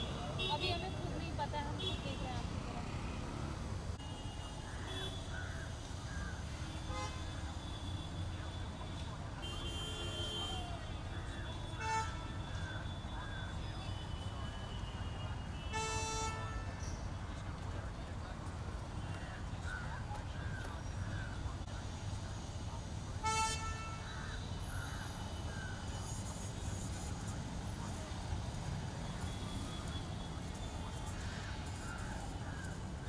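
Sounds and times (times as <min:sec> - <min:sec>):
rumble of passing vehicles: 0:00.0 - 0:33.0
vehicle horns honking: 0:06.8 - 0:08.6, 0:09.4 - 0:13.1, 0:13.8 - 0:16.8, 0:23.2 - 0:24.1.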